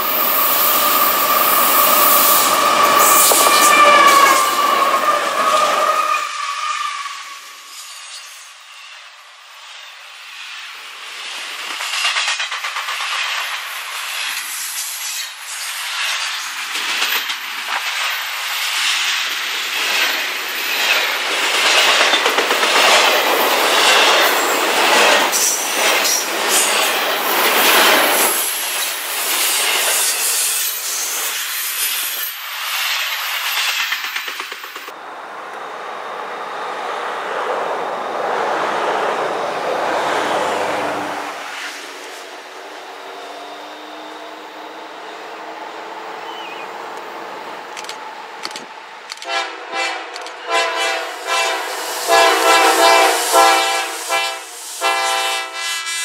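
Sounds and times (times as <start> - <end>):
train wheel and rail noise: 0.0 - 56.0
clacking over rail joints: 11.6 - 14.5, 19.8 - 28.3, 32.9 - 35.0, 47.7 - 50.5
locomotive horn blasts: 49.2 - 56.0.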